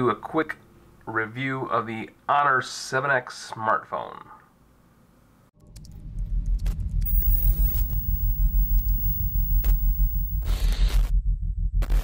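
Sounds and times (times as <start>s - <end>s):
crackling clicks: 7.1s - 10.5s
static hiss bursts: 7.1s - 10.5s.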